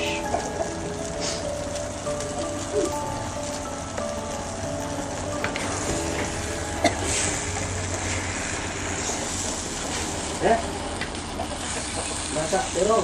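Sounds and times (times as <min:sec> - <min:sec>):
food sizzling in oil: 0:00.0 - 0:13.0.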